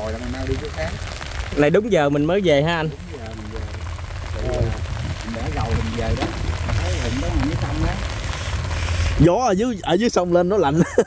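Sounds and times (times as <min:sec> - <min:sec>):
rain falling on plants: 0:00.0 - 0:11.0
wind noise on microphone: 0:03.2 - 0:09.8.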